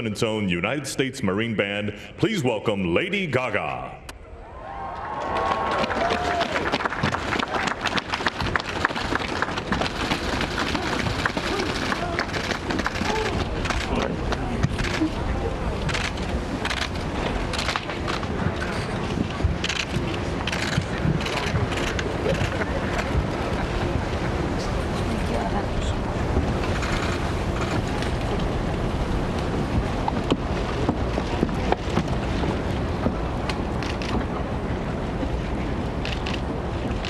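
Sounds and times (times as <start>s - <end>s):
murmur of voices: 10.4s - 29.0s.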